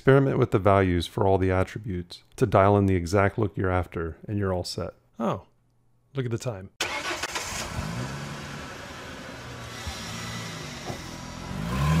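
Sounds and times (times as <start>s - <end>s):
car engine idling and revving: 6.9s - 12.0s.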